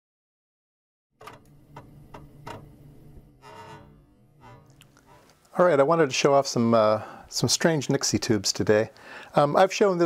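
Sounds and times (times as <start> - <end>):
low steady hum: 1.2 - 9.3.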